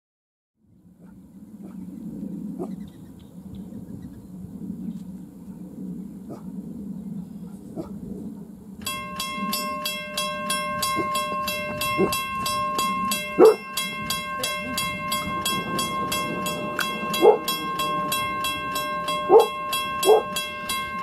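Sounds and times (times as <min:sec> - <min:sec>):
railroad crossing bell ringing: 0:08.8 - 0:21.0.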